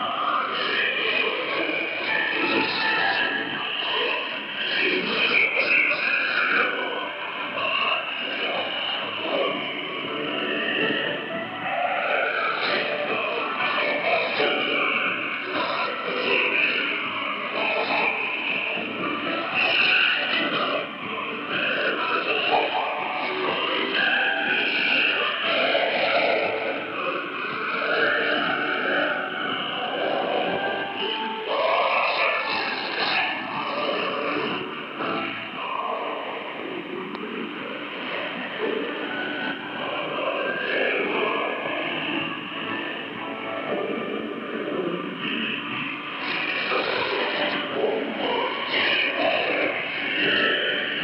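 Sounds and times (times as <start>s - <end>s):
music over shortwave radio: 0.0s - 51.0s.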